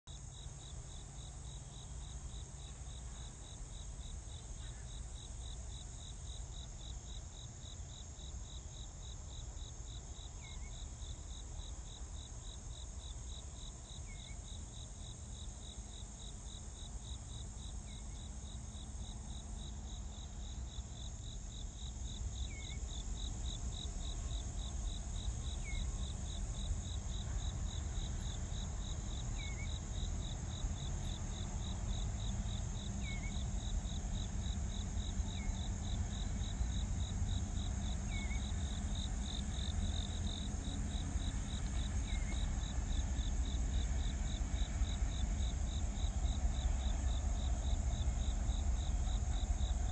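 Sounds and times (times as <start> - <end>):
crickets chirping: 0.1 - 49.9
high insect hiss: 0.1 - 49.9
distant train rumble: 15.8 - 49.9.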